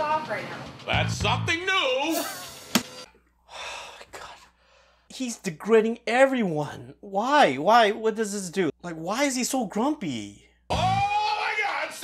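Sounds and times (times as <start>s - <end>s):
man exhaling: 3.5s - 5.0s.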